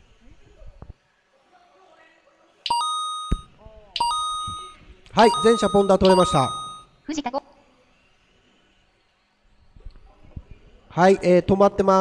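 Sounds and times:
electronic chime: 2.7 - 6.9.

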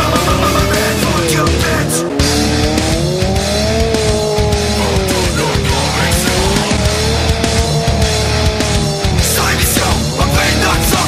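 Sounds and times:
car engine revving: 0.0 - 11.0
rock music with steady beat: 0.0 - 11.0.

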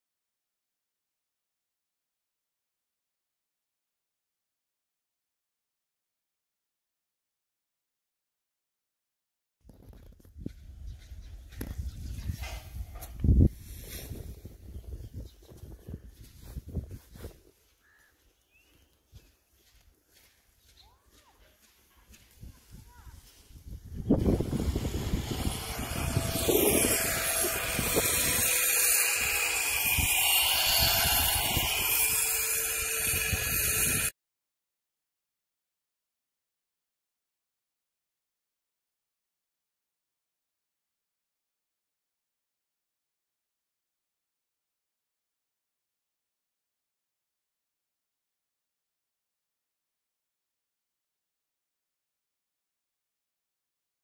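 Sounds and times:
wind buffeting microphone: 9.7 - 17.6, 22.2 - 34.1.

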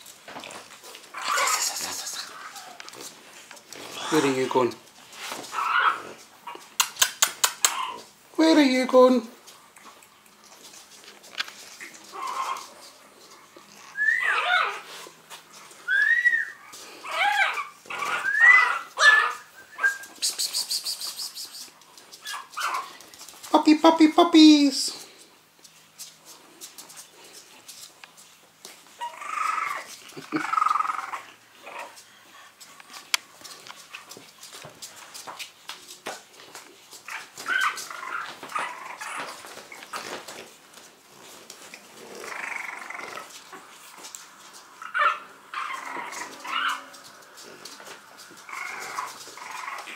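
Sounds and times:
puppy whimpering: 0.5 - 4.6, 5.5 - 8.1, 11.7 - 12.8, 13.7 - 15.1, 15.7 - 23.0, 28.8 - 32.0, 37.0 - 40.4, 41.8 - 49.9
person laughing: 1.5 - 2.4, 30.1 - 30.6.

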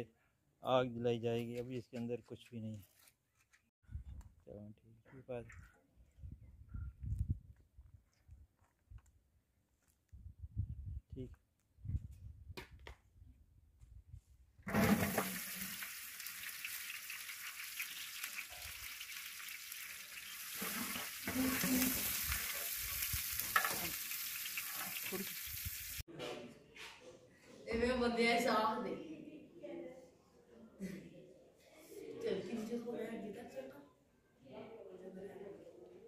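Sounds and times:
onions sizzling in hot oil: 14.7 - 26.0.

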